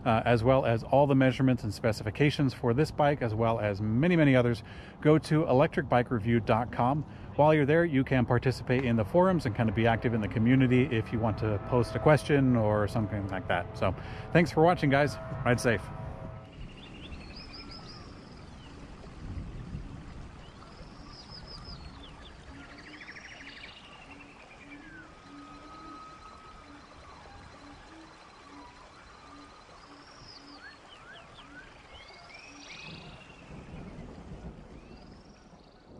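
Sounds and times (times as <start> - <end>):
faint low repeating note: 7.6 - 16.6
birds chirping and calling: 13.0 - 19.0, 20.4 - 35.9.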